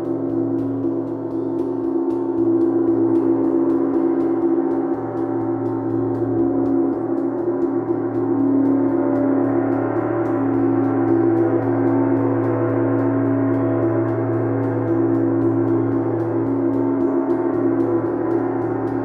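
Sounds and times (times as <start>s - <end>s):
gong played with soft mallets: 0.0s - 19.0s
low hum: 0.0s - 19.0s.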